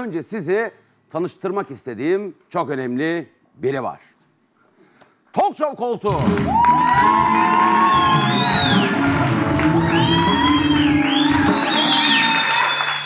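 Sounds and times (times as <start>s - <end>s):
band playing upbeat music: 6.1s - 13.0s
audience cheering and clapping: 6.2s - 13.0s.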